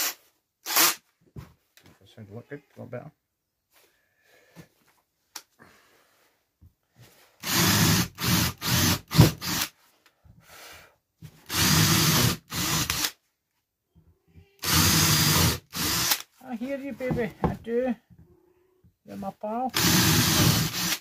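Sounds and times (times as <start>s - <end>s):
cordless drill boring board: 0.0s - 1.0s, 7.4s - 9.7s, 11.4s - 13.2s, 14.6s - 16.2s, 19.7s - 21.0s.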